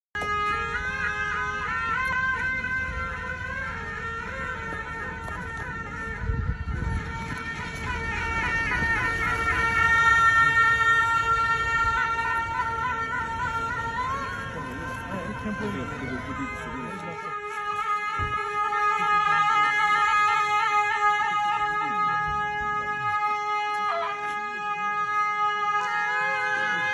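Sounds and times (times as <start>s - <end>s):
reed horns playing long notes: 0.3s - 26.9s.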